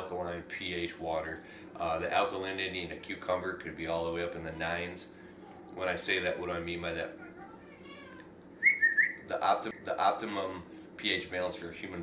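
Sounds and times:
short high whistling tone: 8.6s - 9.2s.

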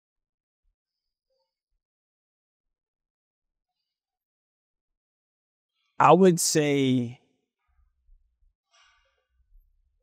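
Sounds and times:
man's drawn-out word: 6.0s - 7.2s.

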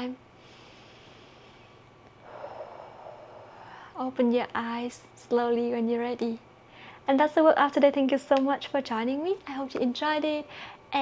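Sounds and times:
woman breathing out: 0.4s - 4.0s.

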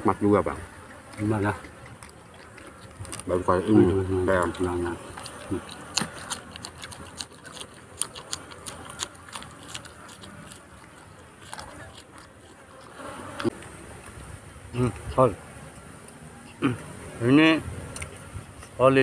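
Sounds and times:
crunchy chewing of vegetable: 0.7s - 14.2s.

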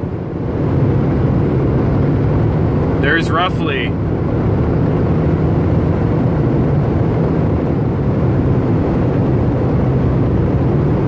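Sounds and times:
car cabin road and engine drone: 0.0s - 11.0s.

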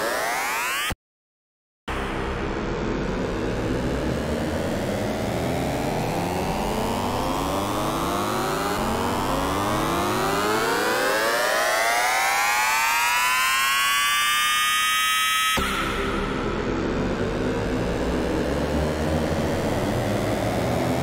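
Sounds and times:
synthesized riser effects: 0.0s - 1.0s, 1.9s - 21.0s
noisy synth effect: 1.9s - 21.0s.

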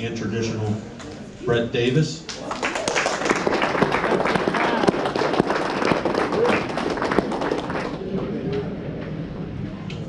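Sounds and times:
small crowd clapping: 2.3s - 8.1s.

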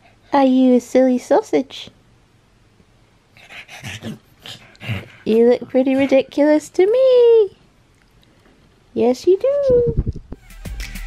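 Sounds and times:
dog breathy noises: 3.3s - 6.3s.

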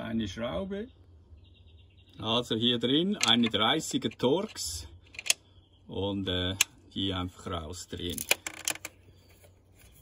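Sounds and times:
screw key clicking and scraping: 3.2s - 5.4s.

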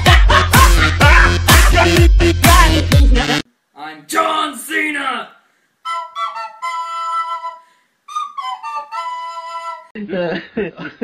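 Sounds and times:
flute-like woodwind held notes: 5.8s - 10.0s.

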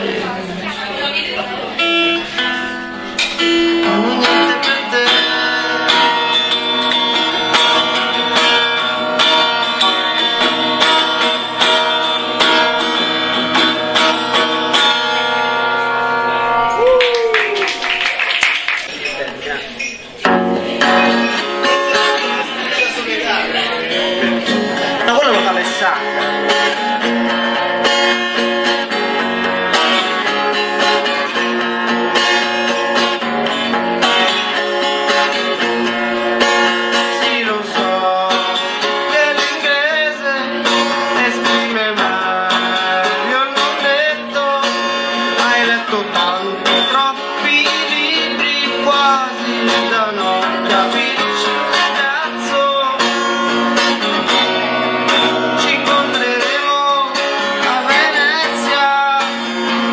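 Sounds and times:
guitar playing: 0.0s - 59.9s
man singing: 3.4s - 15.2s, 20.8s - 59.9s.

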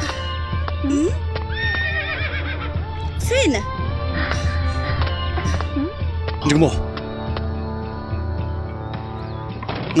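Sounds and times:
background music: 0.0s - 10.0s
horse whinnying: 1.5s - 2.7s.

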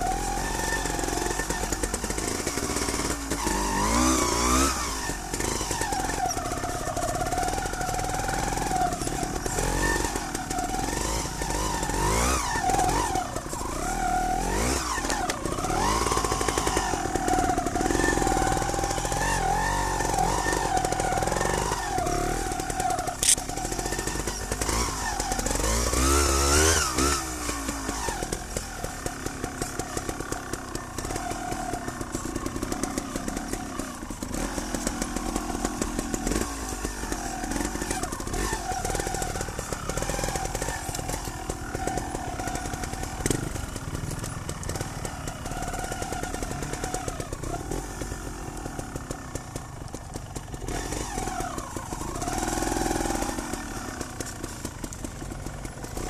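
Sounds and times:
motorcycle engine revving: 0.0s - 56.0s.

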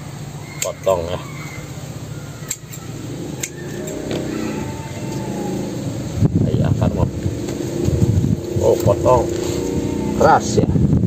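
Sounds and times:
motor engine hum: 0.0s - 11.0s
blade clicking into wood: 2.4s - 2.8s.

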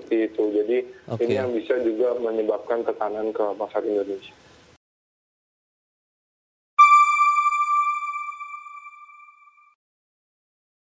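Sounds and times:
bell-like electronic tone: 6.8s - 9.8s.

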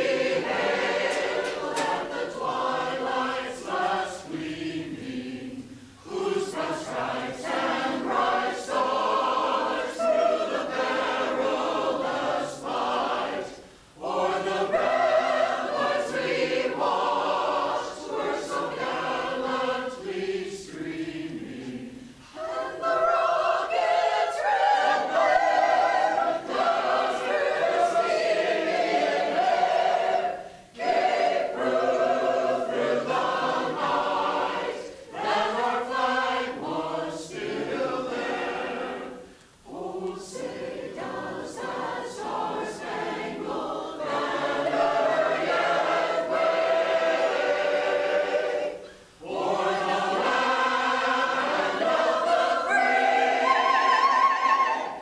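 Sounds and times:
choir singing in unison: 0.0s - 55.0s.

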